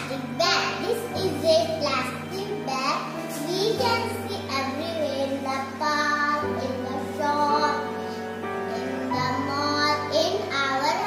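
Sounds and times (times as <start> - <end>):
child singing: 0.0 - 8.1, 8.7 - 11.0.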